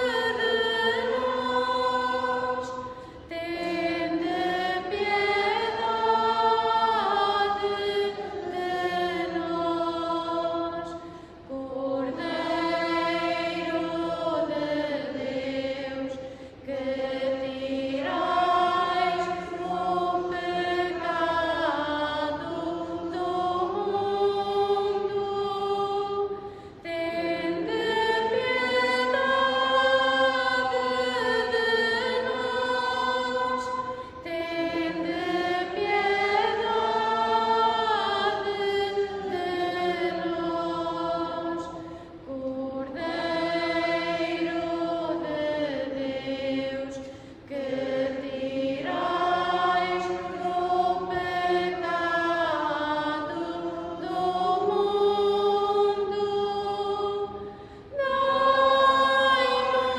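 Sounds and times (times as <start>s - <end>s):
liturgical chant singing: 0.0s - 59.9s.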